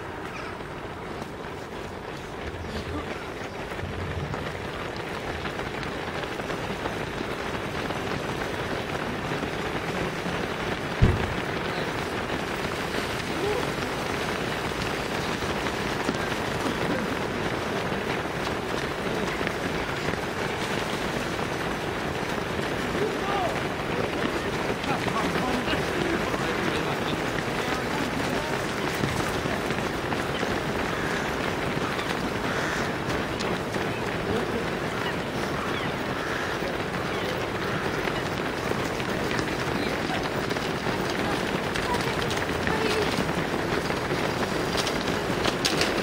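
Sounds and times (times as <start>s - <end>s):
runners' footsteps on tarmac: 0.0s - 46.0s.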